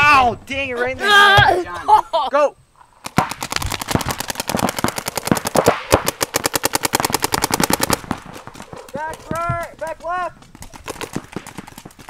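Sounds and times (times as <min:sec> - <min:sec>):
paintball markers firing: 0:03.0 - 0:12.0.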